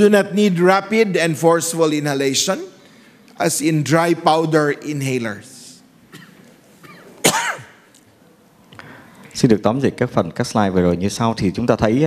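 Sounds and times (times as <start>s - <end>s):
man clearing his throat: 6.1s - 7.8s.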